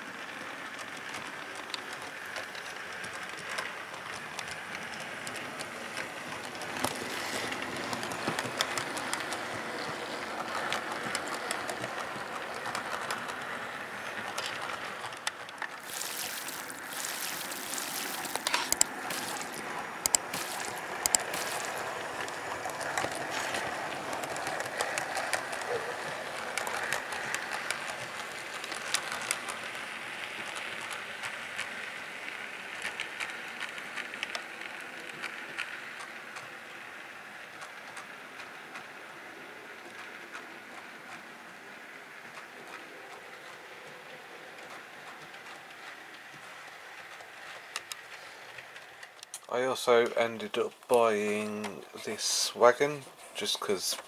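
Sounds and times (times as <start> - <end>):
model train motor whirring: 0.0 - 54.0
wheels clicking over rail joints: 0.0 - 54.0.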